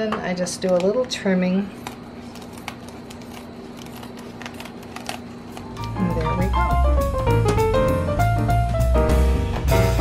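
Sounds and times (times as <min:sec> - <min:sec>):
scissors snipping plastic: 0:01.8 - 0:05.9
loud instrumental music: 0:06.5 - 0:10.0.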